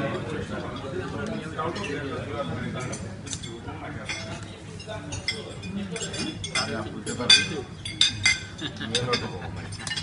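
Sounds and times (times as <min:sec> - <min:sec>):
cutlery clinking on plates: 0:02.8 - 0:10.0
men talking: 0:05.7 - 0:07.8, 0:08.6 - 0:09.8.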